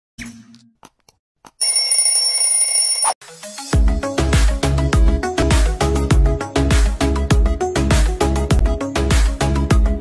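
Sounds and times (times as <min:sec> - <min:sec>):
song with heavy bass beat: 0:03.7 - 0:09.9.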